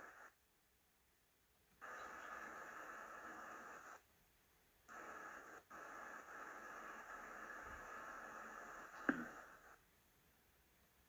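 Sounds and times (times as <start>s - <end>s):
faint microphone line hiss: 0.0s - 11.0s.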